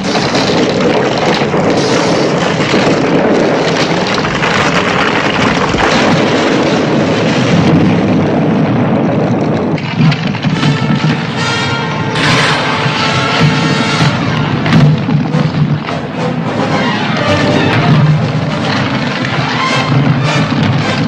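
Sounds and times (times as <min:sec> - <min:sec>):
rockslide rumble and crash: 0:00.0 - 0:21.0.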